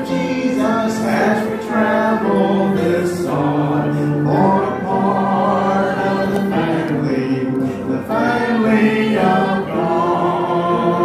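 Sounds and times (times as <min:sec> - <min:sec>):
congregation singing: 0:00.0 - 0:11.0.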